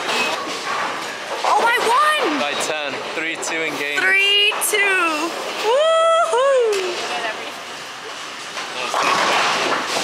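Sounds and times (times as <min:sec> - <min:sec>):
bowling alley clatter: 0:08.6 - 0:10.0.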